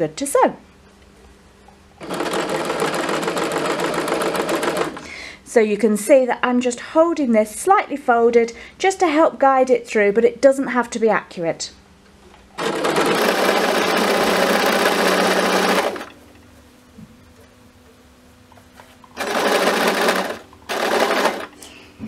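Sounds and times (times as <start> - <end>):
electric sewing machine stitching: 2.0 - 5.1, 12.6 - 16.2, 19.2 - 21.6.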